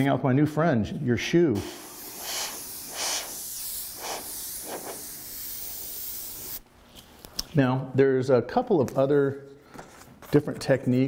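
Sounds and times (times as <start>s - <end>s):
airbrush spraying hiss: 1.6s - 6.6s.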